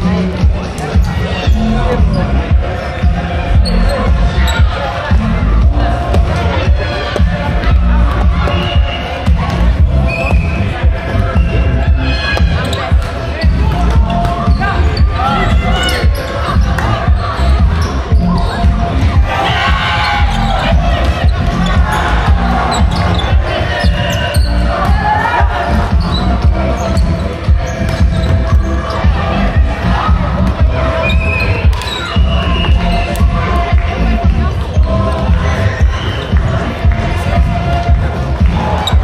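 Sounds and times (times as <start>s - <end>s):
background music: 0.0s - 39.0s
players calling out: 0.0s - 39.0s
volleyballs hit and bouncing: 3.0s - 11.6s, 12.2s - 29.2s, 30.0s - 39.0s.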